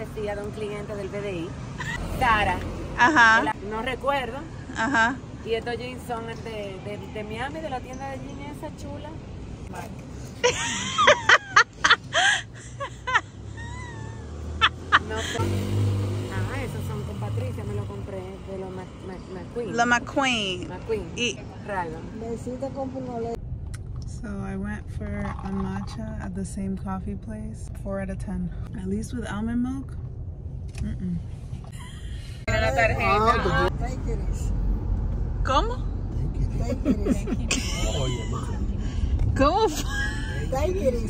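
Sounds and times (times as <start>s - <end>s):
vehicle engine humming: 0.0s - 41.0s.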